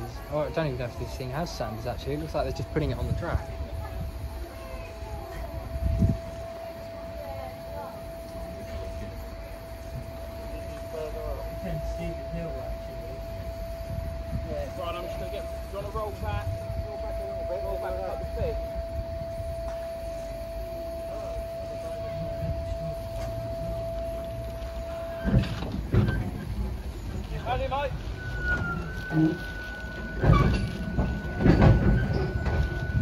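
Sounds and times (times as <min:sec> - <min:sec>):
higher steady steam tone: 0:00.0 - 0:33.0.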